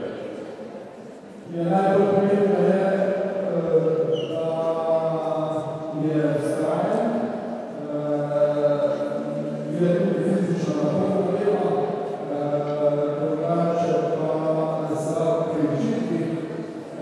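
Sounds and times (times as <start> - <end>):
man chanting unaccompanied: 1.5 - 17.0.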